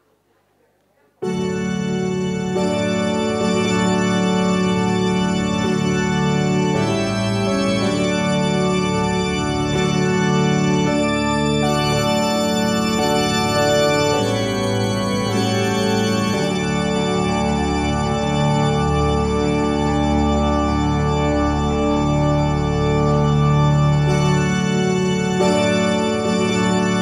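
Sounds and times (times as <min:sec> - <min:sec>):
tango keyboard chords over speakers: 0:01.2 - 0:27.0.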